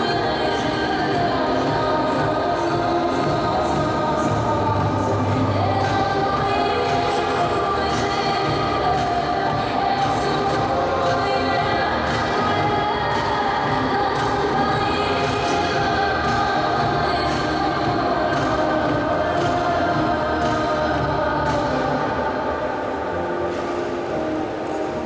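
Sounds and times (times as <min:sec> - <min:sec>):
choral music over speakers: 0:00.0 - 0:25.0.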